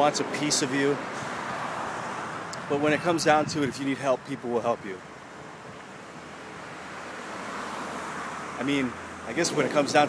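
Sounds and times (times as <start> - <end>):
city street background noise: 0.0 - 10.0.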